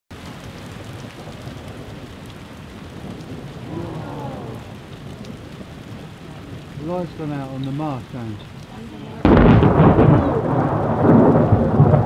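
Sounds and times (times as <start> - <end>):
steady rain falling: 0.1 - 12.0
low rumble of thunder: 0.2 - 12.0.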